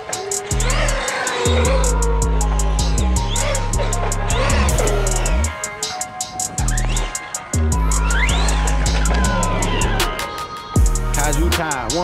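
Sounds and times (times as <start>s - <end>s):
whine rising and falling in pitch: 0.0s - 5.8s, 6.5s - 10.3s
hi-hat ticks: 0.0s - 12.0s
deep sustained bass line: 0.5s - 5.5s, 6.6s - 10.1s, 10.8s - 11.6s.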